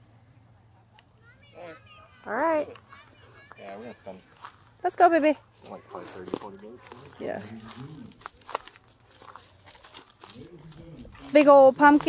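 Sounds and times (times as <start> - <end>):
footsteps on straw: 3.4 - 12.0.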